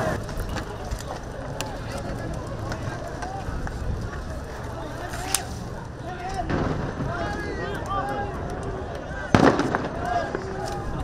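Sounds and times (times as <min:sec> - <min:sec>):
distant shouting voices: 0:00.0 - 0:11.0
sharp crack: 0:00.0 - 0:11.0.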